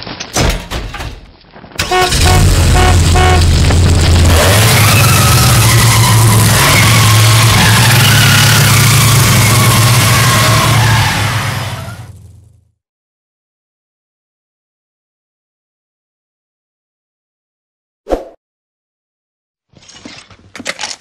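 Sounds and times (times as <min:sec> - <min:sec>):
car engine accelerating: 0:01.8 - 0:12.6.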